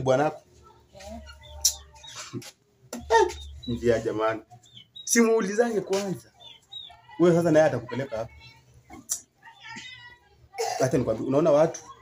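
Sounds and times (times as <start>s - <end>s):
man talking: 3.6s - 4.5s, 5.1s - 6.3s, 10.8s - 11.8s.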